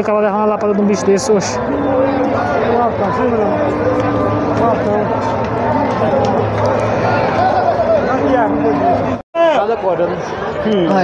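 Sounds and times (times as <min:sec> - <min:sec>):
crowd of men talking and calling out: 0:00.0 - 0:11.0.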